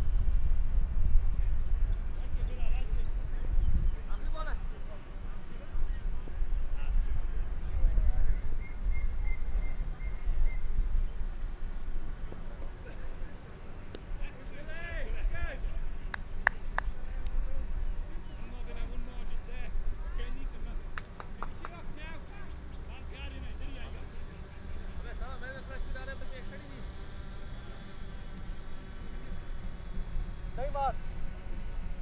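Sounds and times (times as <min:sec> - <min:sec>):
wind on microphone: 0:00.0 - 0:12.4
faint distant voices: 0:00.9 - 0:32.0.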